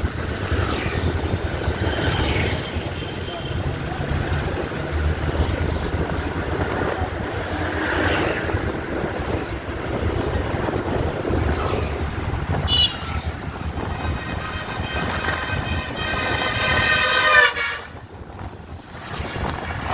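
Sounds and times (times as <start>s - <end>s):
bus engine and road rumble: 0.0s - 19.9s.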